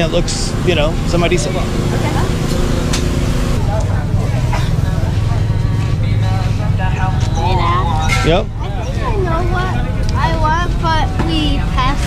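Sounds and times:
faint chatter of people: 0:00.0 - 0:12.0
low engine hum: 0:00.0 - 0:12.0.

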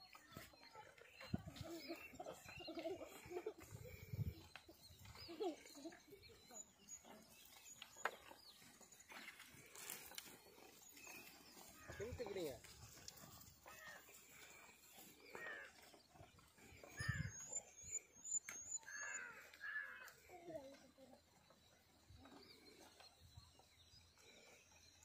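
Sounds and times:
bird chirping: 0:00.0 - 0:25.0.

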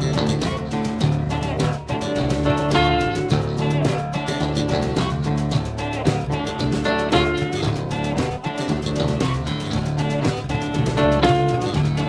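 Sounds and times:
amplified blues harmonica: 0:00.0 - 0:05.4
bass guitar: 0:00.0 - 0:12.0
drum kit beat: 0:00.0 - 0:12.0
guitar: 0:00.0 - 0:12.0.

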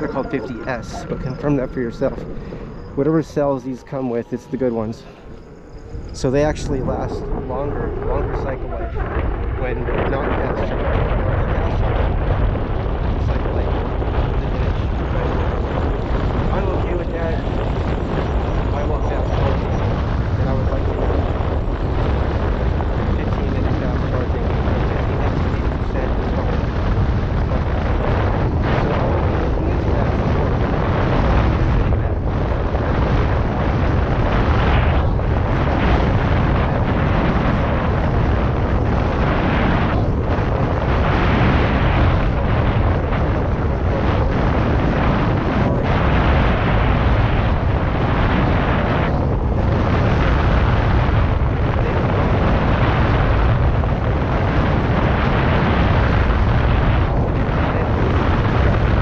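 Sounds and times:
wind rumbling over microphone: 0:00.0 - 0:59.0.

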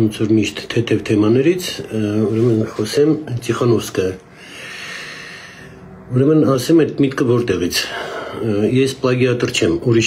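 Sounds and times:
man breathing in: 0:04.3 - 0:06.0, 0:07.9 - 0:08.4.

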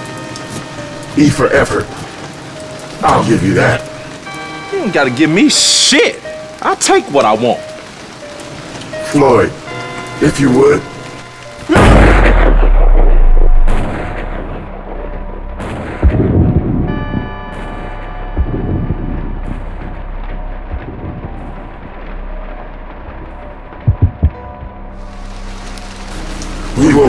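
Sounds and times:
gunshot with booming tail: 0:11.7 - 0:14.9, 0:15.6 - 0:17.2
sharp gunshot cracks: 0:11.8 - 0:14.4
quick low thumps: 0:15.9 - 0:17.4, 0:18.4 - 0:19.7, 0:20.7 - 0:21.9, 0:23.8 - 0:24.8.

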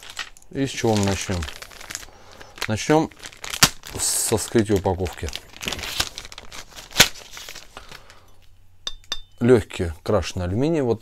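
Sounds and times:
plastic bag crinkling: 0:00.0 - 0:08.5
sharp crack: 0:03.4 - 0:04.1.

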